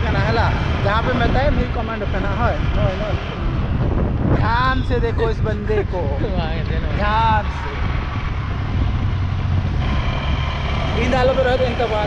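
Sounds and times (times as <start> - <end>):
motorcycle engine running: 0.0 - 12.0
wind and road rumble: 0.0 - 12.0.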